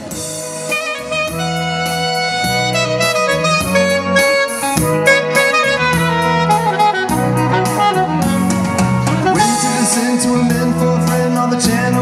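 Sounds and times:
saxophone solo: 0:00.0 - 0:10.8
live band backing: 0:00.0 - 0:12.0.

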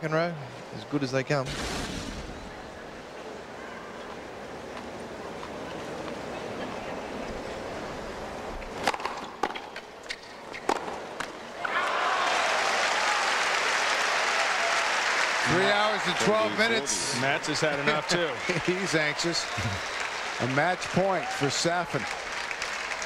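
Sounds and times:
crowd applause and cheering: 0:11.6 - 0:23.0
crowd murmuring: 0:15.5 - 0:20.6.

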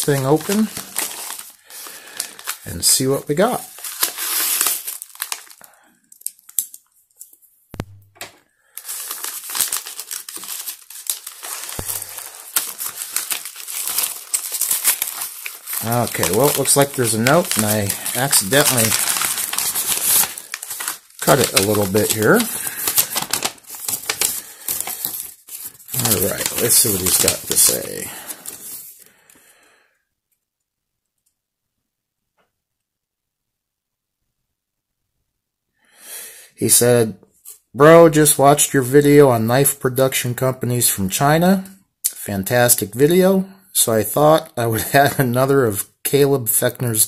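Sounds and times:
paper mailer tearing: 0:00.0 - 0:05.6, 0:08.8 - 0:29.0
paper crinkling: 0:00.0 - 0:07.4, 0:08.7 - 0:29.0.

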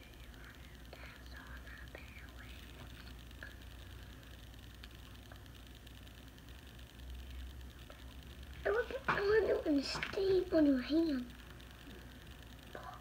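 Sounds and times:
low hum: 0:00.0 - 0:13.0
person speaking: 0:08.6 - 0:11.4.

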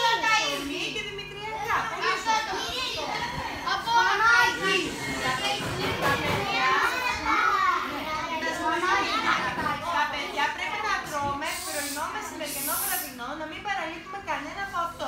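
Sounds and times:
children talking and calling out: 0:00.0 - 0:13.2.

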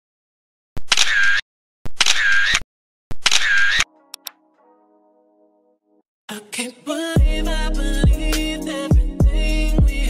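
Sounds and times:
camera shutter: 0:00.8 - 0:02.6, 0:03.2 - 0:04.3.

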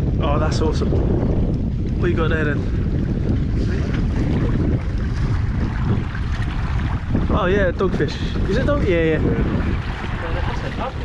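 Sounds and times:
choppy sea water: 0:00.0 - 0:11.0
wind buffeting microphone: 0:00.0 - 0:11.0.

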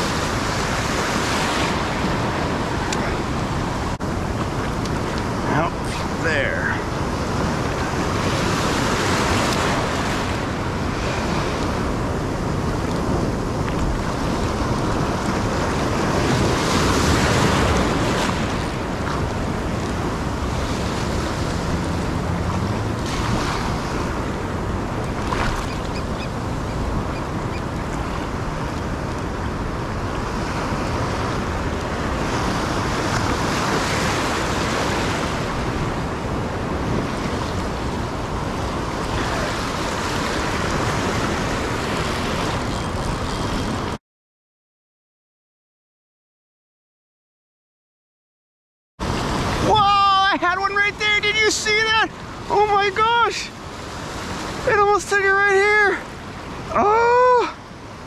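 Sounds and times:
foamy water washing: 0:00.0 - 0:25.7
waves breaking: 0:00.0 - 0:44.0, 0:49.0 - 0:58.0.

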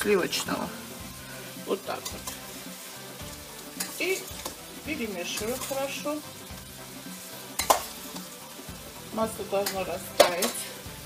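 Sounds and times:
spoon stirring potatoes in a pot: 0:00.0 - 0:11.0
spoon clinking against metal pot: 0:07.6 - 0:07.9.

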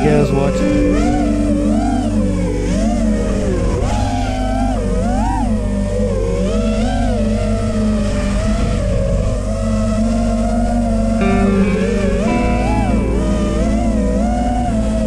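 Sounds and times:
quadcopter motors whining: 0:00.0 - 0:15.0.

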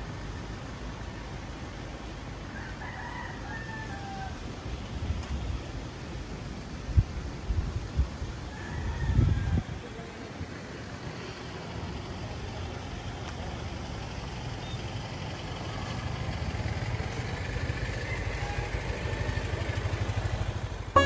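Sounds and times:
motorcycle engine running: 0:11.4 - 0:21.0.

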